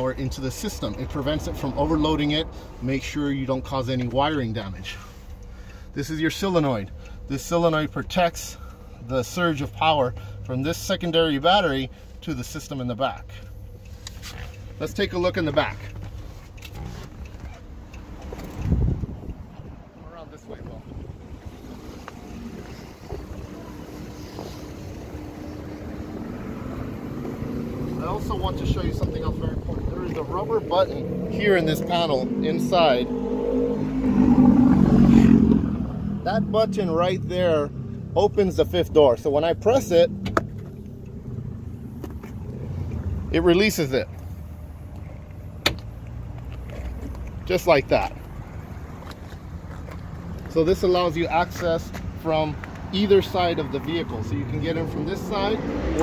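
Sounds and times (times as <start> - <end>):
low steady hum: 0.0 - 33.0
car engine idling: 0.0 - 33.1, 33.8 - 56.0.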